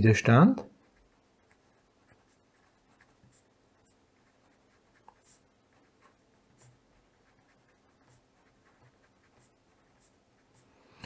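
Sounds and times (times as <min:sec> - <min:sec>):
pen scratching on paper: 0:00.8 - 0:10.8.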